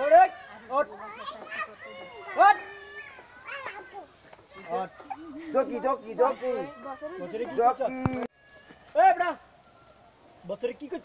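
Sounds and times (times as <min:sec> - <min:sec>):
young men shouting: 0:00.0 - 0:08.0
high drawn-out cry: 0:06.2 - 0:07.6.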